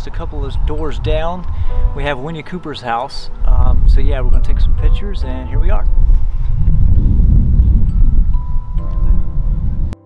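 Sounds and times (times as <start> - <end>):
gusty wind rumbling on microphone: 0.0 - 2.3, 3.3 - 10.0
soft music: 0.0 - 10.0.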